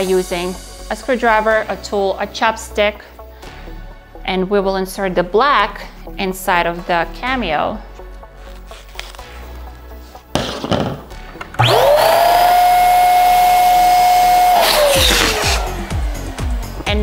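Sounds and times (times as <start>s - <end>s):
balloons rubbing and rustling: 8.3s - 10.8s, 14.6s - 16.0s
electric balloon inflator whine: 11.6s - 16.9s.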